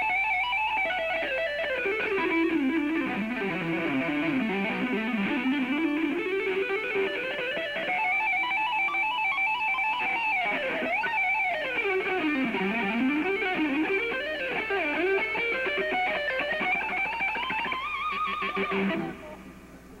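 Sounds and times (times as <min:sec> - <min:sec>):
electric guitar solo tapping: 0:00.0 - 0:19.9.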